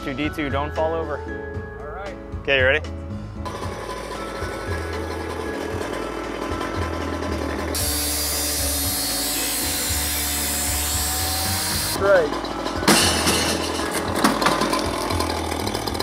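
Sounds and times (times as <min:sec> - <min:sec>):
cut-off saw grinding steel: 0:07.3 - 0:12.4.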